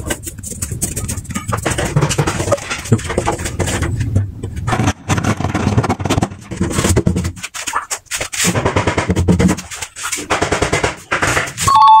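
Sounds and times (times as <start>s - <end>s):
electronic correct tone: 11.7s - 12.0s.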